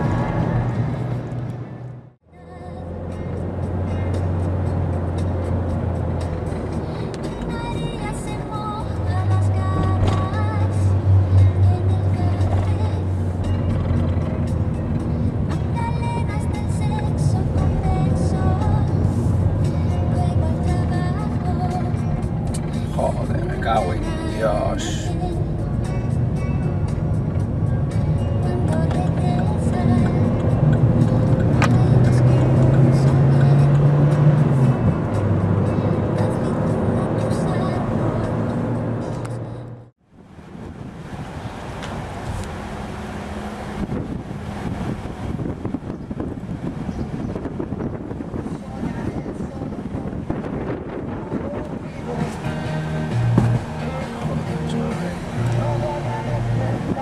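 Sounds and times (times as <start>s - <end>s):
car cabin engine and road noise: 0.0s - 57.0s.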